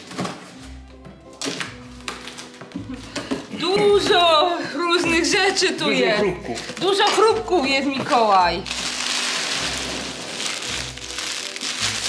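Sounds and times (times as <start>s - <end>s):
foam packing peanuts rustling: 8.1s - 12.0s
cellophane wrap crinkling: 8.6s - 12.0s.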